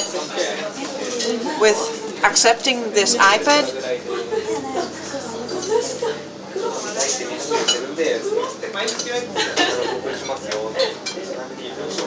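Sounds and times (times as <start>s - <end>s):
dishes and cutlery clinking: 0.0s - 2.4s, 4.8s - 8.1s, 8.8s - 12.0s
background chatter: 0.0s - 12.0s.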